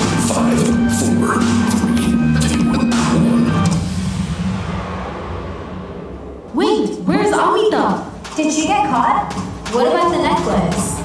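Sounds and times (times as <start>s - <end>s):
dance music with drums: 0.0s - 3.9s, 7.0s - 11.0s.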